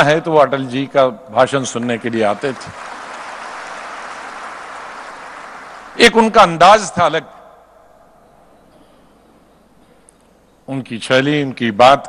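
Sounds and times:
audience applauding: 1.8 - 6.0.

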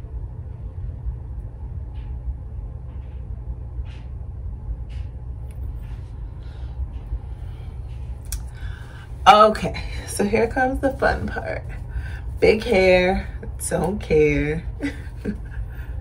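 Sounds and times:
steady low rumble: 0.0 - 16.0
soft hair rustles: 7.4 - 15.6.

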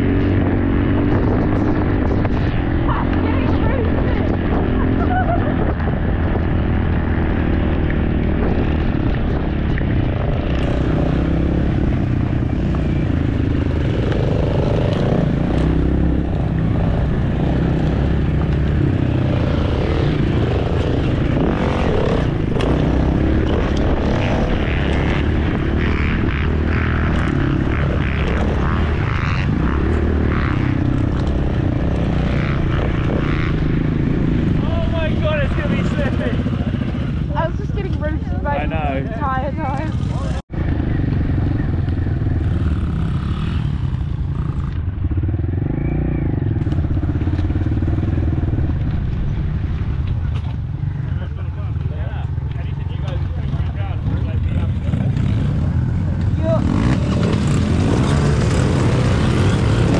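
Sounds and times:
dirt bike engine running: 0.0 - 59.9.

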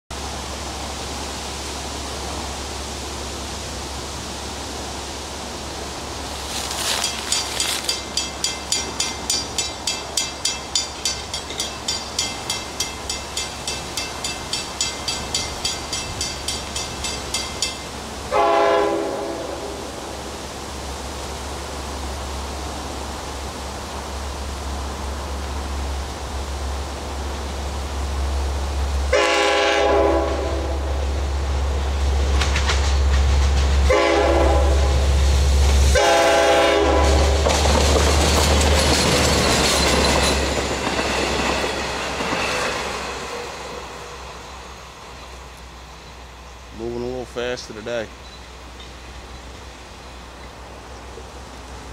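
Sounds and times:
train engine rumble and wheels: 0.1 - 51.9
crossing warning bell ringing: 6.8 - 18.0, 38.6 - 43.5, 48.1 - 49.4
train horn blasts: 18.3 - 19.8, 29.1 - 30.9, 33.9 - 35.1, 35.9 - 37.4.

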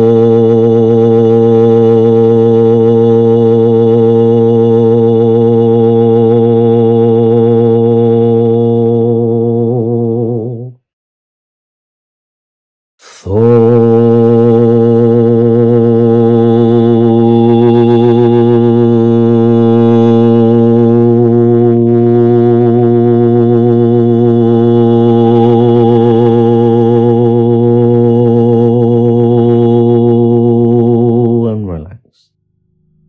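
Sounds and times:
man chanting long low note: 0.0 - 10.8, 13.0 - 32.3.

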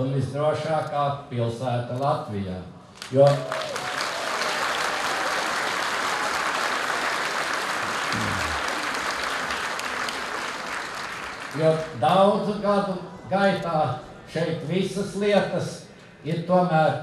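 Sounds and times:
audience applauding: 3.2 - 12.0.

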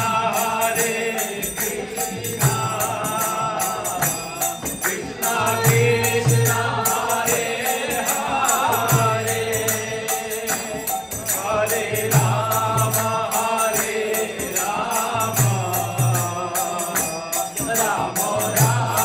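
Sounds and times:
group chanting: 0.0 - 19.0
harmonium: 0.0 - 19.0
small hand cymbals: 0.0 - 19.0.

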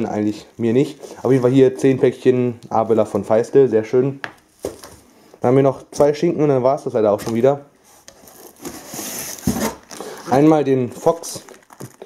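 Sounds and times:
plastic wrap scraping cardboard: 7.3 - 12.0.

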